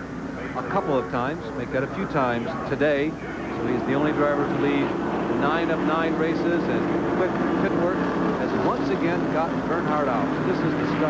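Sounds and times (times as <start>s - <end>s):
race car engines at speed: 0.0s - 11.0s.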